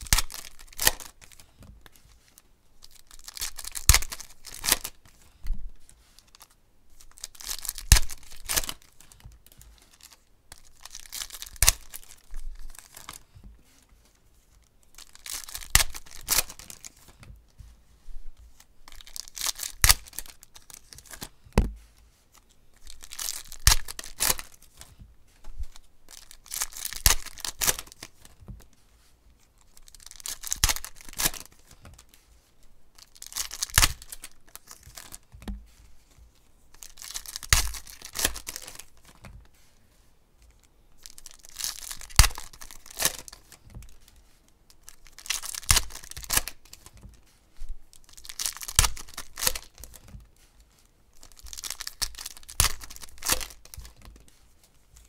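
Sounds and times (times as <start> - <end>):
foil packs tearing: 0.0 - 1.4, 26.1 - 28.3, 29.8 - 31.6, 33.0 - 35.2, 36.8 - 39.1, 41.0 - 43.5, 44.8 - 46.9, 48.0 - 50.0, 51.2 - 53.9
cards rustling: 0.0 - 17.8, 18.4 - 55.0.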